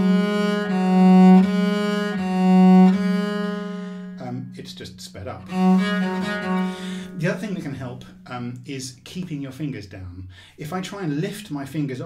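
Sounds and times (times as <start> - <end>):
bowed bass viol: 0.0 - 9.8.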